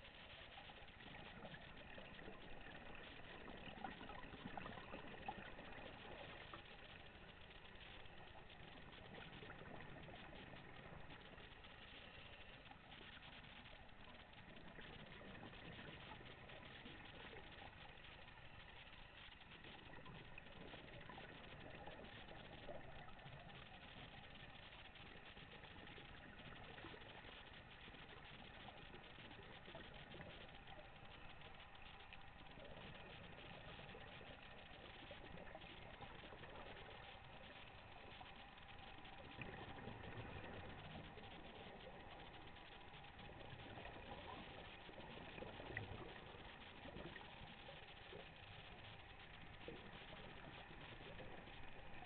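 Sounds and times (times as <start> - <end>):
muffled underwater hiss: 0.0 - 52.0.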